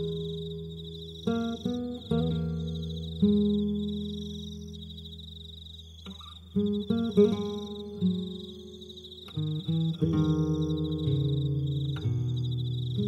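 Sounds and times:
acoustic guitar picked slowly: 0.0 - 13.0
cricket trill: 0.0 - 13.0.

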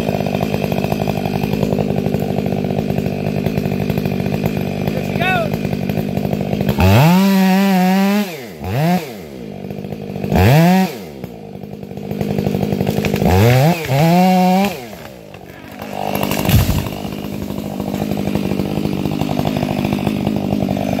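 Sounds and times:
chainsaw idling and revving: 0.0 - 21.0
tree trunk hitting ground: 12.9 - 20.8.

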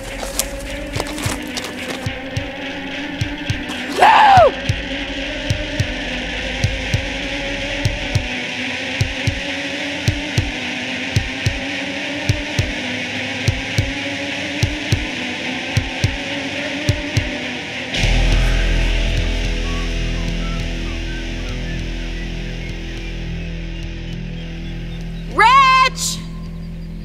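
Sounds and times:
low double thumps: 0.0 - 10.6, 18.0 - 25.3
eerie drone: 0.0 - 27.0.

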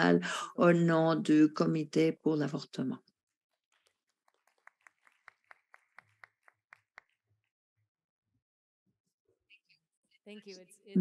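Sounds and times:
faint light clapping: 4.3 - 7.2.

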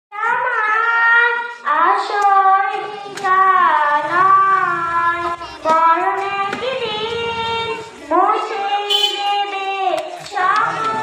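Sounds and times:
girl singing into a microphone: 0.1 - 11.0.

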